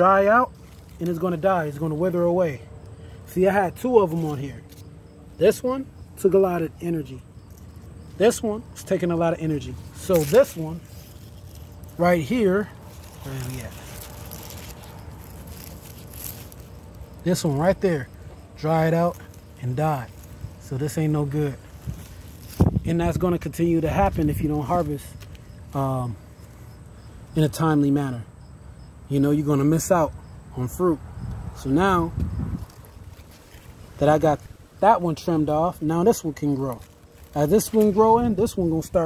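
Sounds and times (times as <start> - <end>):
outdoor background noise: 0.0 - 39.0
wind rumble on microphone: 21.8 - 24.6, 31.0 - 33.2.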